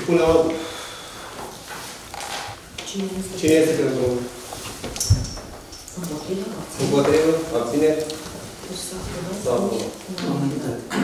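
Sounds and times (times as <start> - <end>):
person speaking: 5.9 - 11.0.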